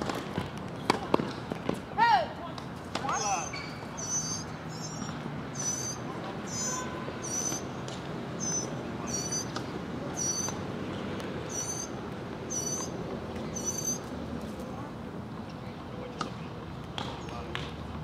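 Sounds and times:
small bird chirping: 3.5s - 7.6s, 8.4s - 9.6s, 10.2s - 10.6s, 11.5s - 11.9s, 12.5s - 14.0s.

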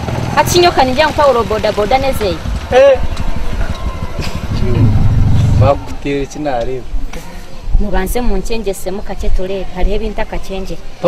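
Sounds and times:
motorcycle engine idling: 0.0s - 6.0s
people conversing: 0.4s - 11.0s.

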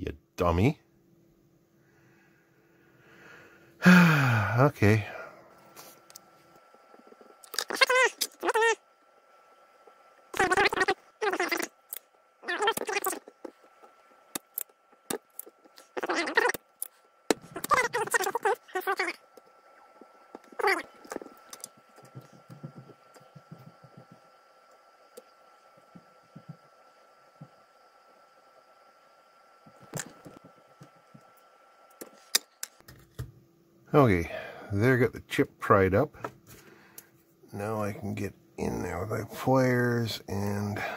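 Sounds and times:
faint high-pitched whine: 0.0s - 40.9s
man muttering: 3.8s - 5.3s.

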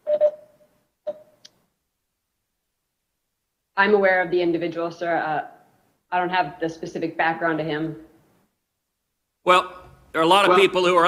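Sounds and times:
brief ringing tone: 0.0s - 1.2s.

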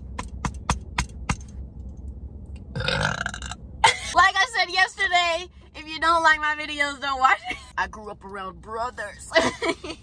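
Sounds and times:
woman burping: 2.7s - 4.1s
woman's voice: 3.9s - 9.9s.

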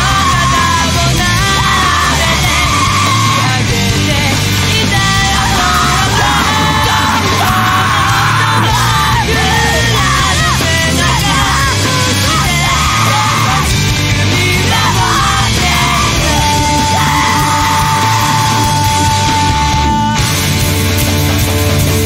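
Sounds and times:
person yelling vocals: 0.0s - 3.9s, 4.8s - 13.7s, 14.4s - 20.2s
loud distorted rock band: 0.0s - 22.0s.

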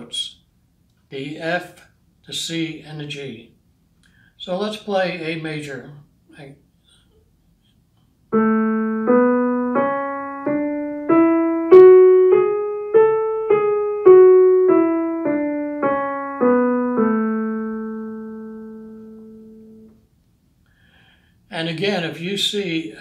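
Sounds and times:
digital piano playing a scale: 8.3s - 20.0s.

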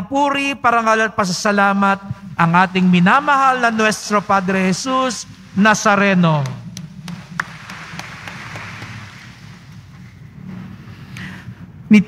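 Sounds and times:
congregation applauding: 6.3s - 10.2s.

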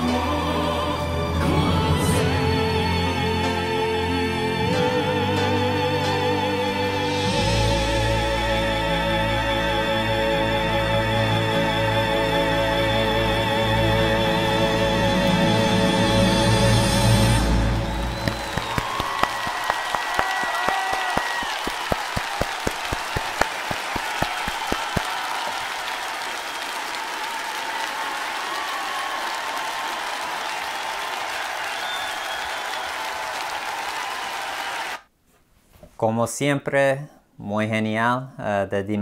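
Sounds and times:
audience applauding: 17.4s - 35.1s
sharp close hand claps: 18.2s - 35.0s.

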